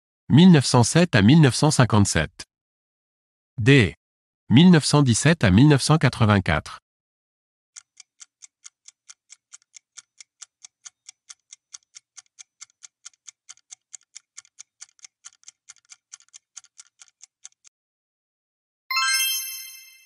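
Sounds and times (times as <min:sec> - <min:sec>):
faint clock-like ticks: 0:07.7 - 0:17.7.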